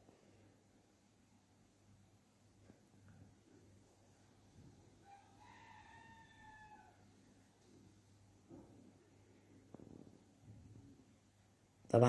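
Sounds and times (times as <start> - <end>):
faint drawn-out animal call: 5.0 - 7.0.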